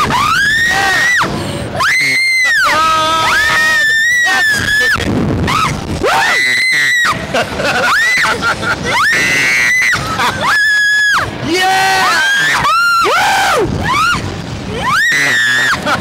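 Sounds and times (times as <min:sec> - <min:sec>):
lower voice screaming: 0:00.0 - 0:07.2
people screaming: 0:00.0 - 0:16.0.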